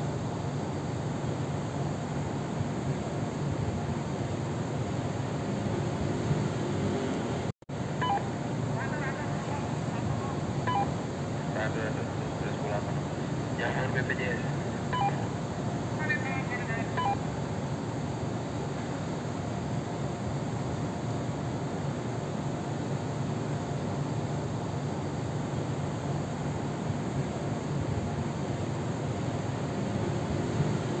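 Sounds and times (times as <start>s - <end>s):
faint voices: 8.7s - 10.6s, 11.5s - 15.3s, 16.0s - 17.2s.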